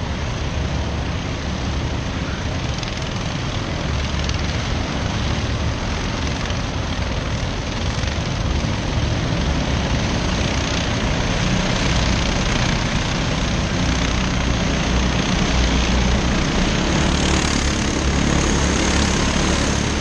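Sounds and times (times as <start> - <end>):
kart engines droning: 0.0 - 20.0.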